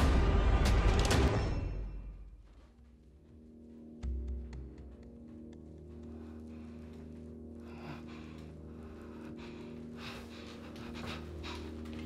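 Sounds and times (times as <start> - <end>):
low steady drone: 2.6 - 12.0
man panting heavily: 6.0 - 12.0.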